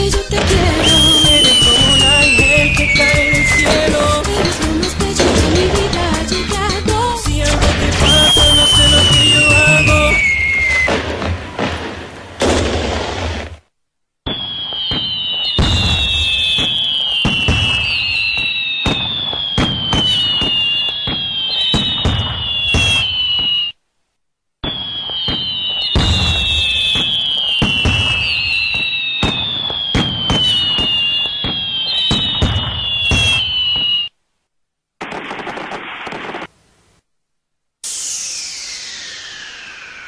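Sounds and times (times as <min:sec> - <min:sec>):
fireworks bangs and pops: 0:00.0 - 0:23.8, 0:24.6 - 0:34.1, 0:35.0 - 0:36.6
falling whistles: 0:00.7 - 0:04.2, 0:08.0 - 0:11.1, 0:14.3 - 0:23.8, 0:24.6 - 0:34.2, 0:37.8 - 0:40.0
burst of hiss: 0:37.8 - 0:40.0.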